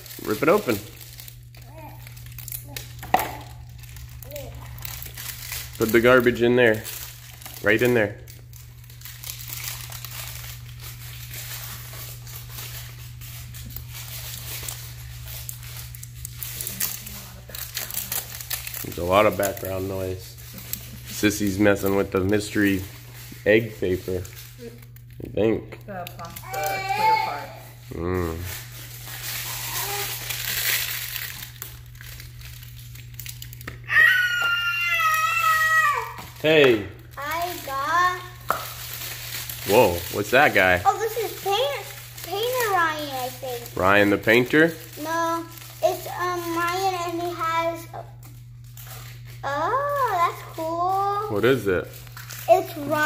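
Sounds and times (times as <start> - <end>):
paper wrapping crinkling: 0.0 - 53.0.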